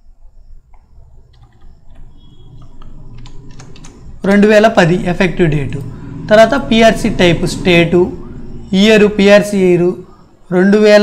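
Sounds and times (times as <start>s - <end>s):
faint keystrokes on keyboard: 0.7s - 4.4s
man speaking: 4.2s - 11.0s.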